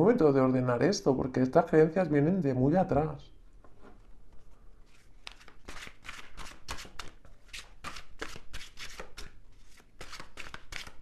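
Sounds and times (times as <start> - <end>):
cards being shuffled: 4.8 - 11.0.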